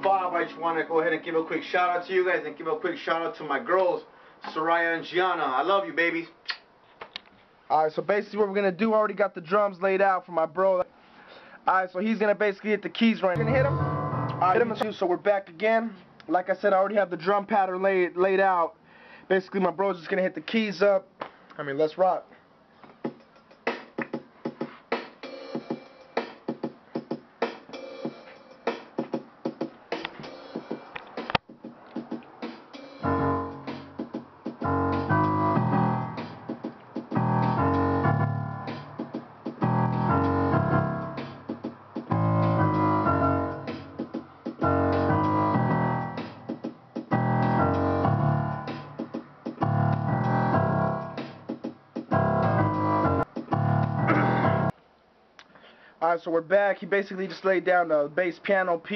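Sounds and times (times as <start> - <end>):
quick sharp clicks: 6.4 - 7.2
low heavy piano chords: 13.4 - 15.0, 33.0 - 54.7.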